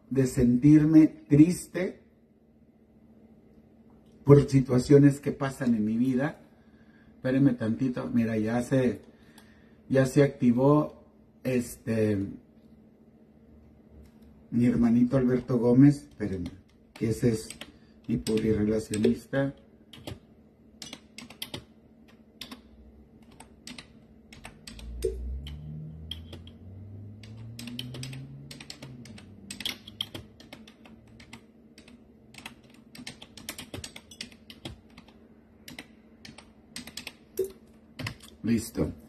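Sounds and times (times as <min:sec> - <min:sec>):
keyboard typing clicks: 0:16.1 - 0:19.3, 0:19.9 - 0:26.6, 0:27.2 - 0:38.4
low wavering hum: 0:24.4 - 0:31.2.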